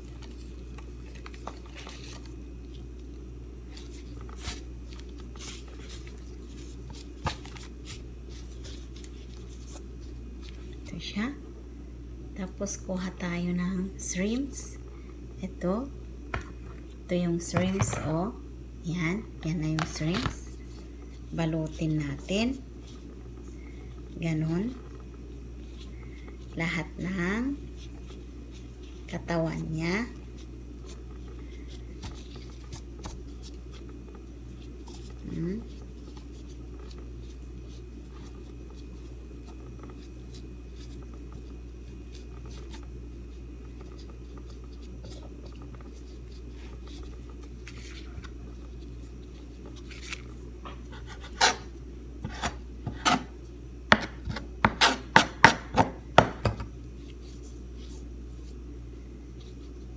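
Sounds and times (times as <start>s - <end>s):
pastry strands rustling: 0.0s - 11.4s, 19.9s - 51.9s, 56.8s - 59.9s
steady low hum: 0.0s - 59.9s.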